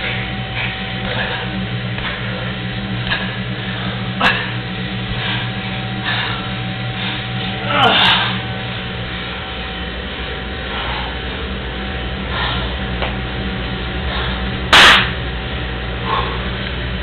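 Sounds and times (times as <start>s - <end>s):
steady low hum: 0.0s - 17.0s
loud sharp impact: 14.7s - 15.2s.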